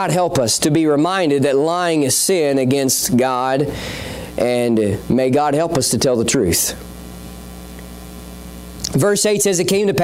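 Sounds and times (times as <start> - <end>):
electrical mains hum: 0.0 - 10.0
faint microphone hiss: 0.0 - 10.0.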